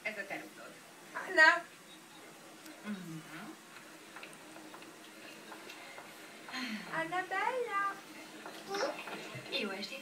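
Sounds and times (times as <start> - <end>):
low murmured vocal sound: 2.8 - 3.6.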